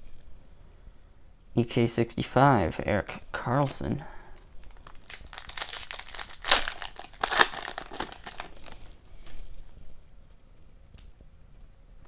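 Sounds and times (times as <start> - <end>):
foil wrapper crinkling and tearing: 4.6 - 9.4.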